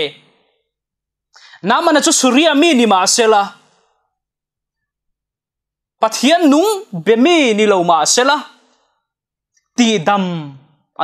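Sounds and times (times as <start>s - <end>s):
man speaking: 6.0s - 8.6s.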